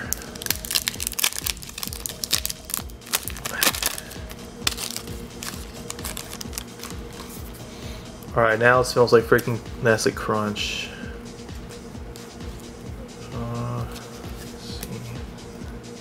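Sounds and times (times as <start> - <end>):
faint background music: 0.0 - 16.0
plastic wrapper crinkling: 0.1 - 7.4.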